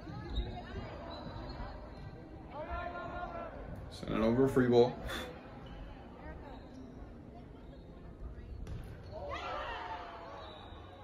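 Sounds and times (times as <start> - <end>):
sneaker squeaks: 0.0 - 2.8, 5.5 - 11.0.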